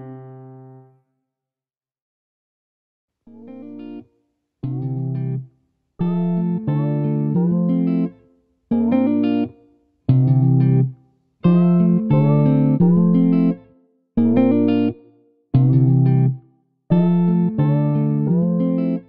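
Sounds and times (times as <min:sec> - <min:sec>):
plucked string melody: 0:06.0 - 0:08.1, 0:08.7 - 0:13.6, 0:14.2 - 0:14.9, 0:16.9 - 0:19.0.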